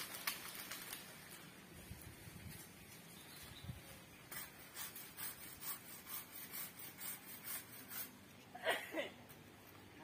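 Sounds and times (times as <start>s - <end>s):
hand saw cutting branch: 4.3s - 8.2s.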